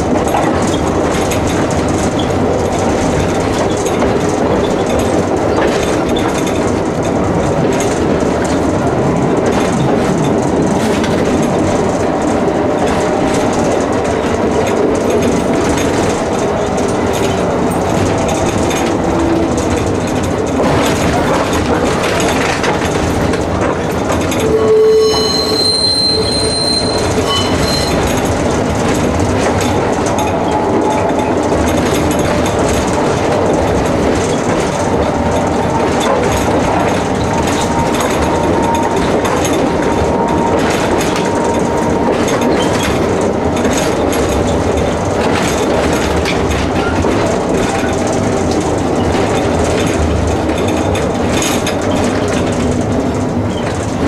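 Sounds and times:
tram body rattling: 0.0 - 54.0
wheels clattering over rails: 0.0 - 54.0
wheels squealing: 24.3 - 28.3.

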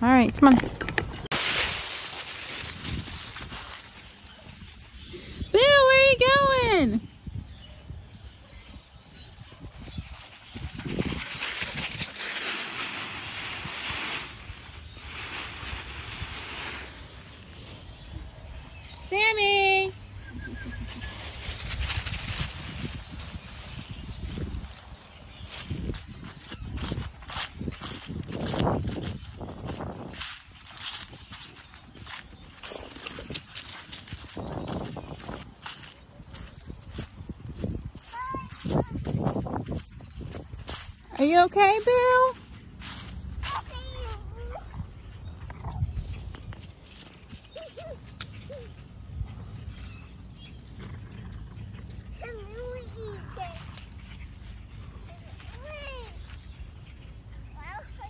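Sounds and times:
footsteps crunching dry leaves: 0.1 - 6.4, 9.3 - 18.9, 19.5 - 58.0
toddler high-pitched vocal calls: 47.4 - 48.9.

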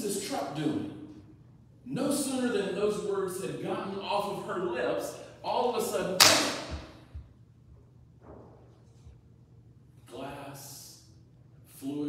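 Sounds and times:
loud sharp bang: 6.2 - 6.9.

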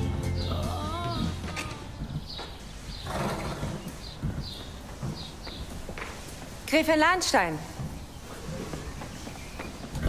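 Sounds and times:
horse shifting in stall: 1.2 - 6.0.

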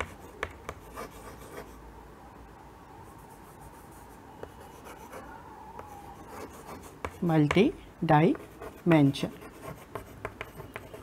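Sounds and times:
chalk scratching on chalkboard: 0.0 - 1.7, 5.8 - 7.6, 8.3 - 11.0.

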